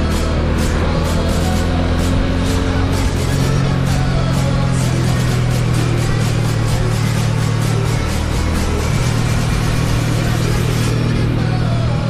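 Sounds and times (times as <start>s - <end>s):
motorcycle engine running: 0.0s - 12.0s
music playing: 0.0s - 12.0s.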